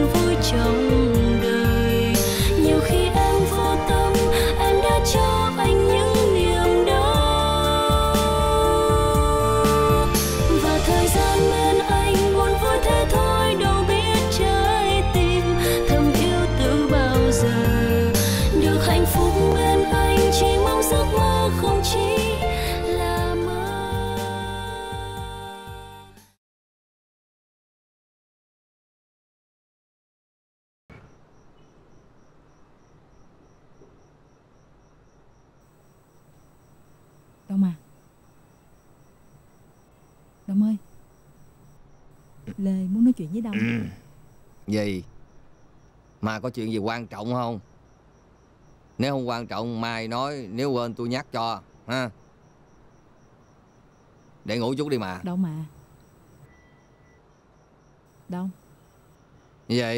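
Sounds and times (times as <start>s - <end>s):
crickets chirping: 0.0s - 25.8s, 30.9s - 59.9s
woman speaking a word: 42.5s - 44.0s, 58.3s - 58.5s
person's short vocal sound: 43.5s - 44.0s.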